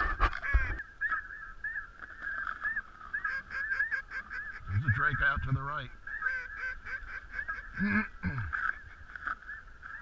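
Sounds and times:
geese honking: 0:00.0 - 0:10.0.

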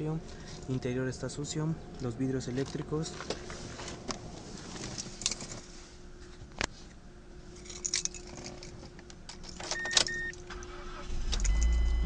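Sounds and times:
ignition key jingling and clicking: 0:07.6 - 0:10.7, 0:11.3 - 0:12.0
short electronic dashboard beeps: 0:09.8 - 0:12.0.

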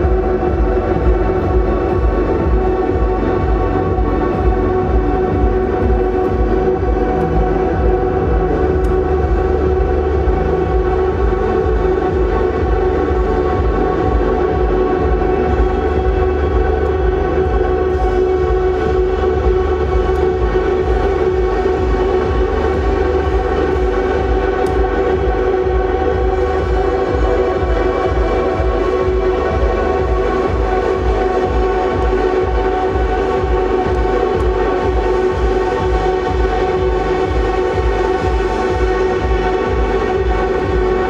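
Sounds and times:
ambient electric guitar drone: 0:00.0 - 0:41.0
pulsing low beat: 0:00.0 - 0:41.0.

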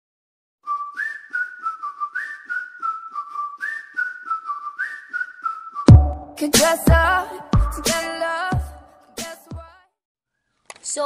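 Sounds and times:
whistled tune: 0:00.6 - 0:07.1
heavier beat: 0:05.9 - 0:09.3.

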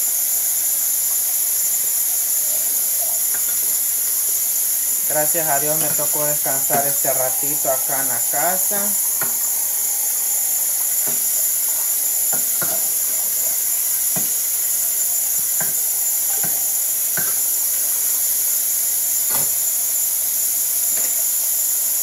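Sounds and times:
tap water running: 0:00.0 - 0:22.0
dishes clinking: 0:11.0 - 0:11.4, 0:12.3 - 0:13.4.

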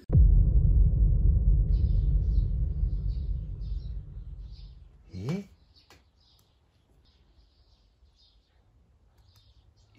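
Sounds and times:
deep rumbling boom: 0:00.0 - 0:05.0
birds chirping: 0:01.6 - 0:09.9.

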